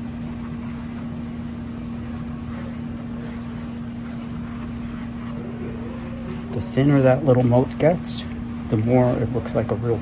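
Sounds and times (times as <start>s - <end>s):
machine humming and rumbling: 0.0s - 10.0s.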